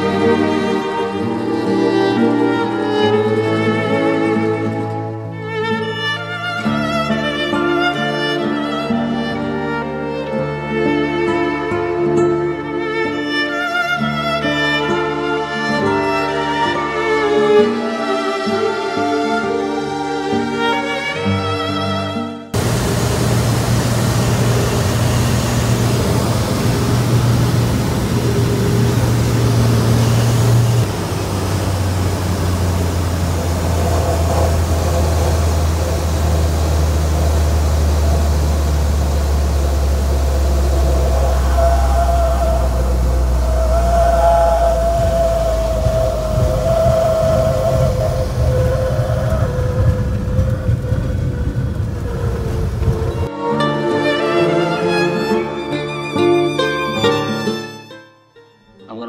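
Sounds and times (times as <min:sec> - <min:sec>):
propeller plane engine: 0:22.6 - 0:53.3
higher wavering tone: 0:22.6 - 0:55.4.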